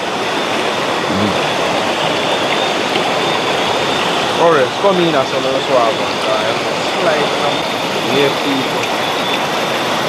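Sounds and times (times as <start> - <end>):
river water rushing: 0.0 - 10.0.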